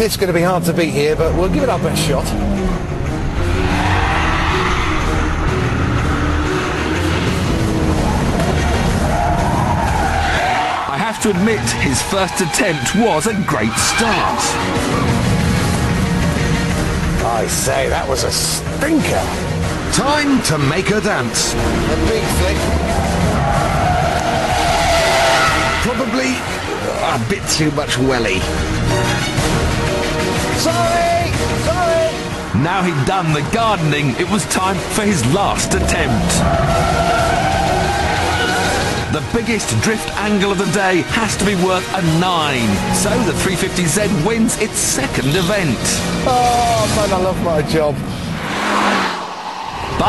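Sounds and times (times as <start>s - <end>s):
race car rushing noise: 0.5s - 18.2s, 19.2s - 30.7s, 31.3s - 44.2s, 47.2s - 50.0s
tyres squealing: 3.5s - 15.3s, 19.8s - 29.3s, 31.6s - 46.6s.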